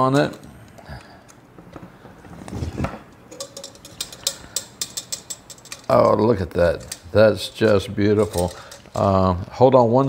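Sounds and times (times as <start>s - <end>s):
light metallic clicks and clinks: 3.3s - 9.1s.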